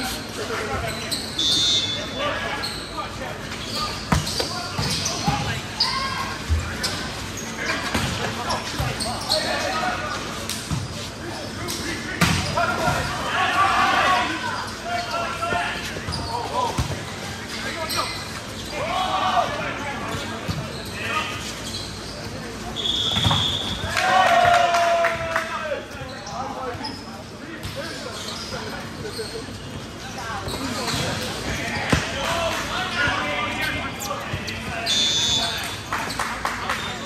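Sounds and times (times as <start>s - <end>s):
players shouting: 12.4s - 16.6s.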